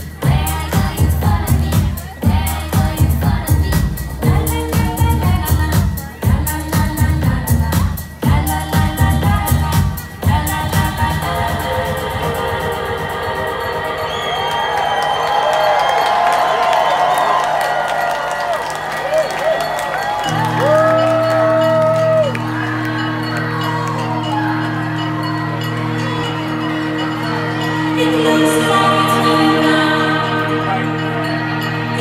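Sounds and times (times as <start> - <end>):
electronic music with synthesizer chords: 0.0 - 32.0
crowd cheering and whooping: 13.2 - 32.0.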